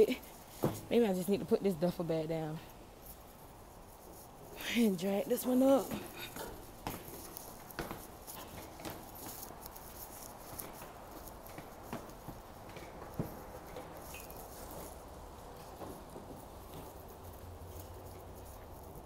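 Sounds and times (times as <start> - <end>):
footsteps: 0.0 - 19.0.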